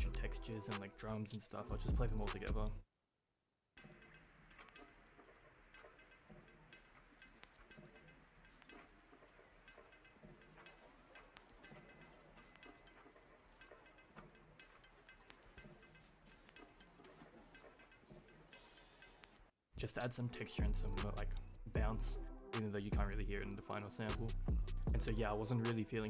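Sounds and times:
dark experimental hip-hop loop: 0:00.0 - 0:02.8, 0:03.9 - 0:26.0.

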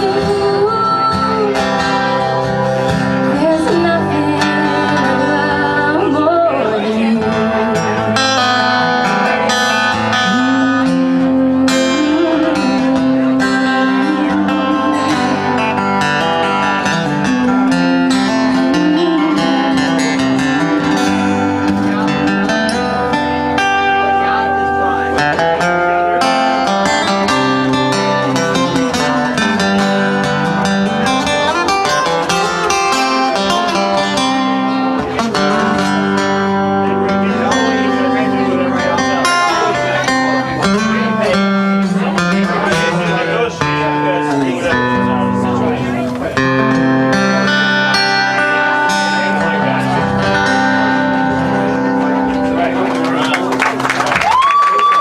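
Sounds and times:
woman singing: 0:00.0 - 0:02.2, 0:03.2 - 0:08.0, 0:10.2 - 0:15.5, 0:17.2 - 0:21.9
acoustic guitars playing: 0:00.0 - 0:55.0.

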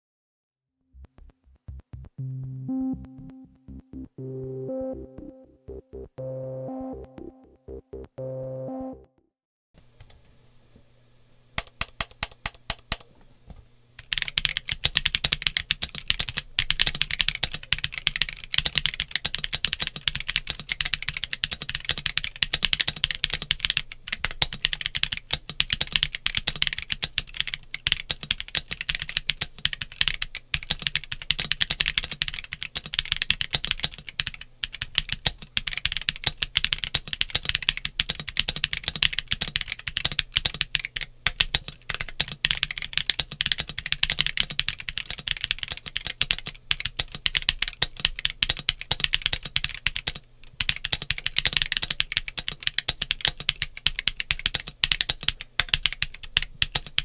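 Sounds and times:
mechanical keyboard typing: 0:11.6 - 0:13.1, 0:14.0 - 0:57.0.

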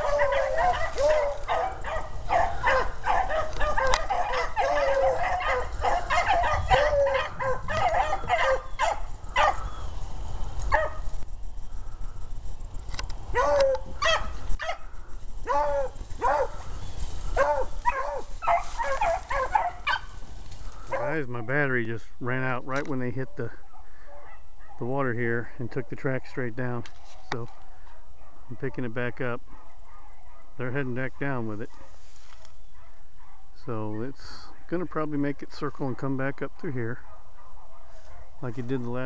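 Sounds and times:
hounds baying and barking: 0:00.0 - 0:11.2, 0:11.8 - 0:21.5, 0:23.1 - 0:25.0, 0:27.5 - 0:34.9, 0:36.9 - 0:39.0.

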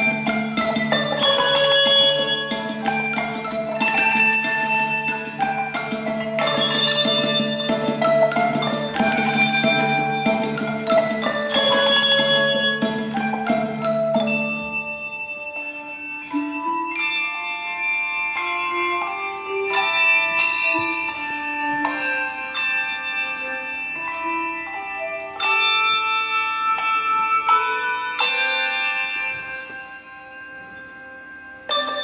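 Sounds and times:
handbells playing a melody: 0:00.0 - 0:32.0.

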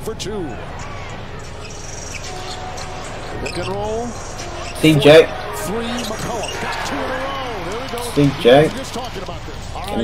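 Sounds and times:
crowd murmur: 0:00.4 - 0:09.9.

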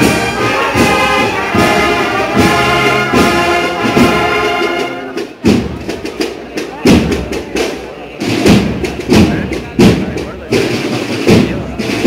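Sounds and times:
crowd chatter: 0:00.0 - 0:12.0
drums beating slow marching cadence: 0:00.0 - 0:12.0.

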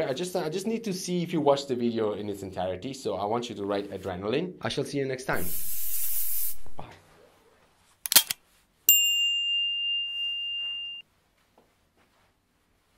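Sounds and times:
high hissing swoosh: 0:05.3 - 0:06.9
high bell-like ding: 0:08.9 - 0:11.0.

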